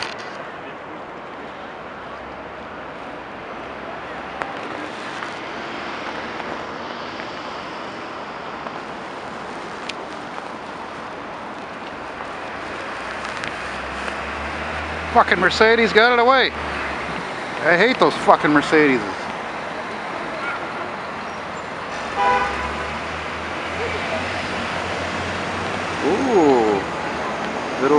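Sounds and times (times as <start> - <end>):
car engines and tyre noise: 0.0 - 27.9.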